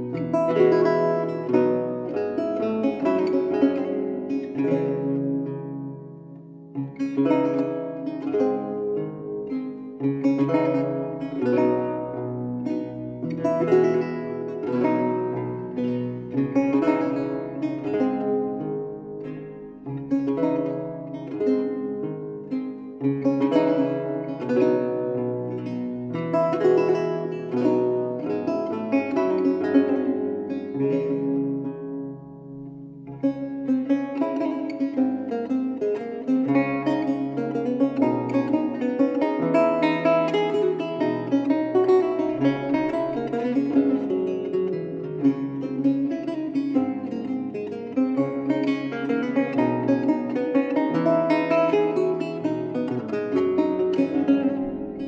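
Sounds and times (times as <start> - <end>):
solo lute playing: 0.0 - 55.0.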